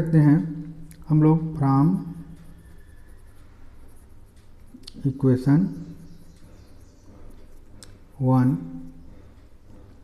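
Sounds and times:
pen scratching on paper: 1.4s - 5.9s.

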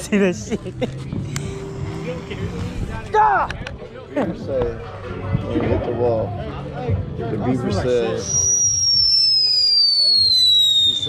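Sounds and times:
whistling firework: 8.2s - 11.0s.

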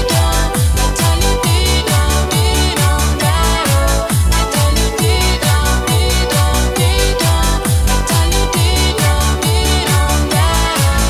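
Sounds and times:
electronic kick drum: 0.0s - 11.0s.

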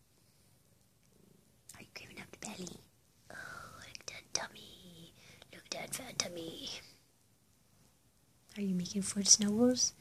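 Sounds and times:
cat purring: 0.2s - 7.1s.

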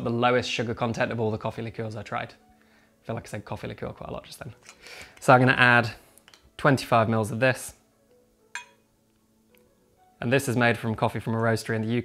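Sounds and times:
glass bottle clinking on metal: 8.6s - 8.8s.

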